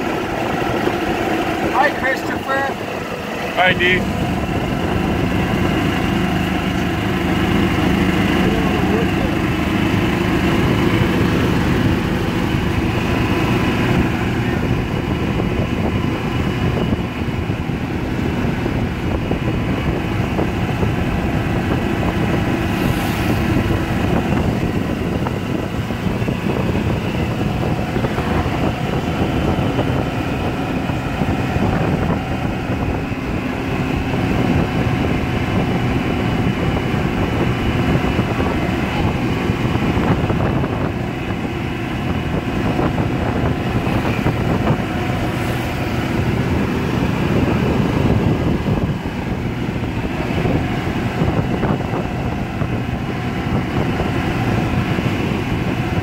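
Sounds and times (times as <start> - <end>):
road and wind noise: 0.0 - 56.0
vehicle engine hum: 0.0 - 56.0.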